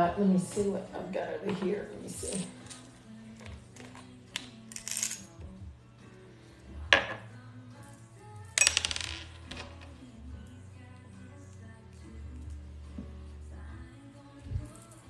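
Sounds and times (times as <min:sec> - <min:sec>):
quiet background music: 0:00.0 - 0:15.0.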